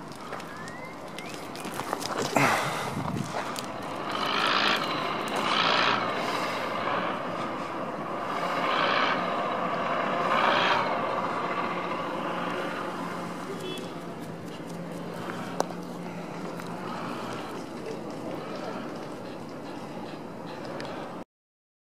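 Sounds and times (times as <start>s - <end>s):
faint low engine hum: 0.0s - 21.2s
vehicles passing: 0.0s - 21.2s.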